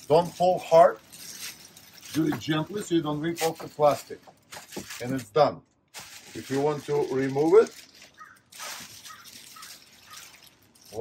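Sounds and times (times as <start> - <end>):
plastic cover rustling and crinkling: 0.0 - 11.0.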